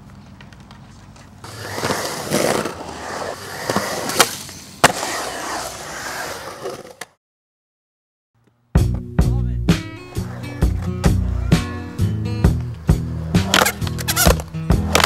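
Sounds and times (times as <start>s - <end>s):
skateboard wheels rolling on concrete: 0.0s - 7.2s, 10.0s - 15.0s
skateboard clacks: 12.5s - 15.0s.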